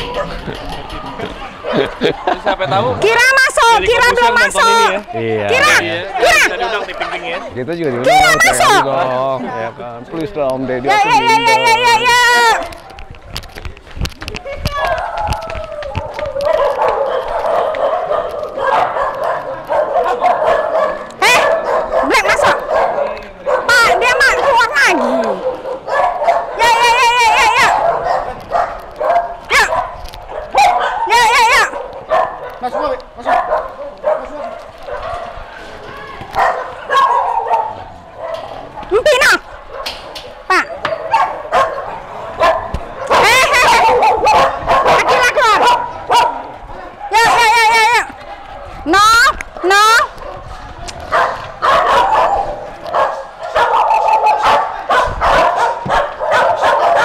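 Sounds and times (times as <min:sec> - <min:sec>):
dogs whining: 0:00.0 - 0:07.1
dogs barking and yipping: 0:00.0 - 0:09.6, 0:10.4 - 0:57.0.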